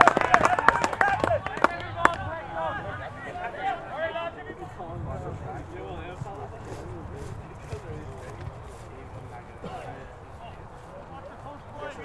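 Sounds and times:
people shouting calls: 0:00.0 - 0:04.7.

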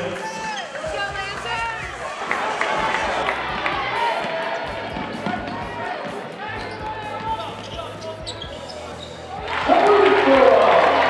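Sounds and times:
voices in hall: 0:00.0 - 0:11.0.

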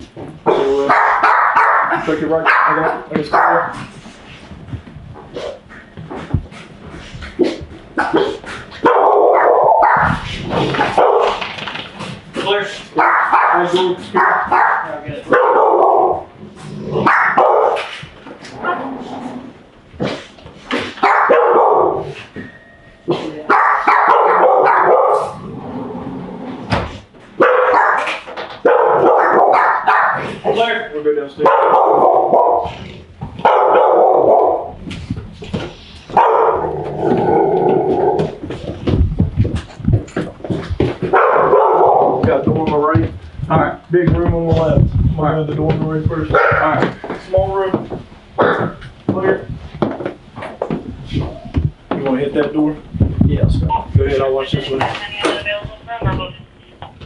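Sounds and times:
dog barking: 0:00.5 - 0:03.8, 0:08.0 - 0:10.2, 0:10.8 - 0:11.4, 0:13.0 - 0:16.3, 0:17.0 - 0:18.0, 0:20.9 - 0:22.2, 0:23.5 - 0:25.4, 0:27.4 - 0:30.6, 0:31.4 - 0:32.8, 0:33.4 - 0:34.8, 0:36.1 - 0:36.8, 0:41.1 - 0:42.3, 0:46.3 - 0:46.9
low thumps: 0:03.8 - 0:08.1, 0:36.7 - 0:57.0.

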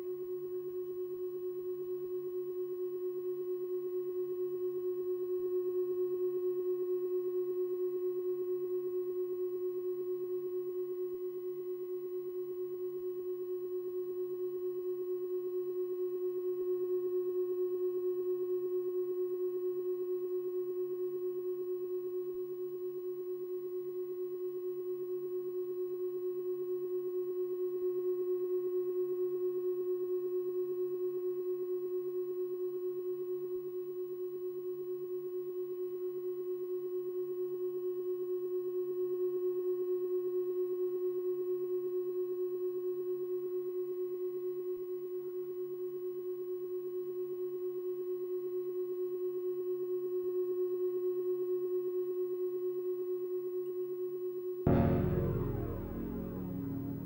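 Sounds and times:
steady electronic drone: 0:54.7 - 0:57.0.

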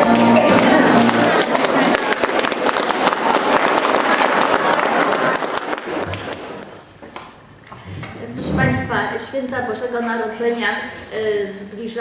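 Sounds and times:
audience applauding: 0:00.0 - 0:06.8.

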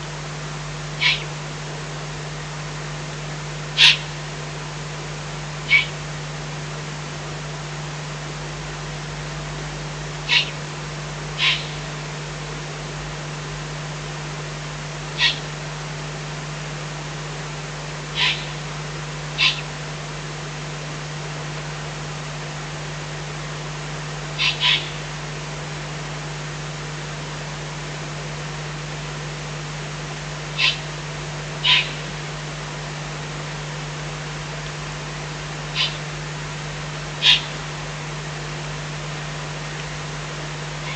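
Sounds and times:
low hum and hiss: 0:00.0 - 0:40.9
owlets hissing calls: 0:01.0 - 0:01.4, 0:03.7 - 0:04.2, 0:05.6 - 0:06.0, 0:10.2 - 0:10.6, 0:11.4 - 0:11.9, 0:15.2 - 0:15.5, 0:18.1 - 0:18.6, 0:19.4 - 0:19.7, 0:24.4 - 0:25.0, 0:30.5 - 0:30.9, 0:31.6 - 0:32.1, 0:35.7 - 0:36.1, 0:37.2 - 0:37.6.

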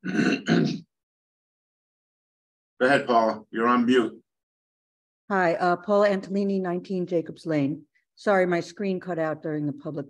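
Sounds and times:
person clearing throat: 0:00.0 - 0:00.9.

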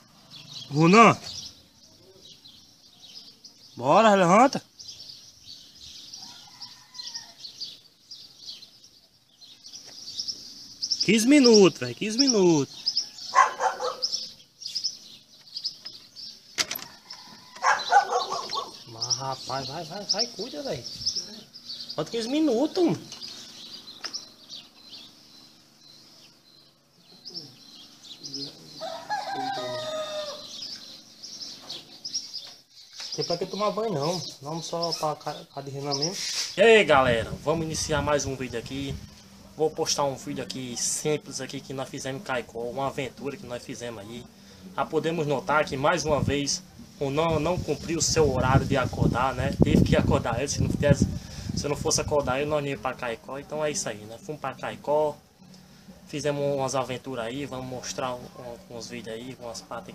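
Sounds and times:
small birds chirping: 0:00.0 - 0:59.9
rooster crowing: 0:06.1 - 0:07.8, 0:12.8 - 0:14.2, 0:16.7 - 0:18.8, 0:28.7 - 0:31.0.

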